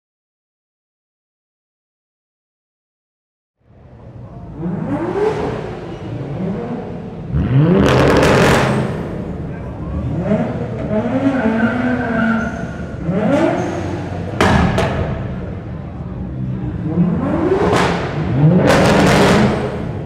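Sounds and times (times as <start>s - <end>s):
car engine revving: 4.4s - 20.0s
sharp exhaust bangs: 12.8s - 15.6s, 17.1s - 20.0s.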